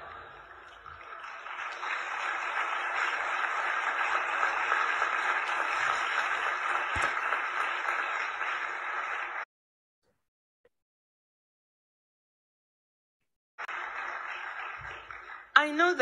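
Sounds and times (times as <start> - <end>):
audience applauding: 0.0 - 9.5, 13.6 - 16.0.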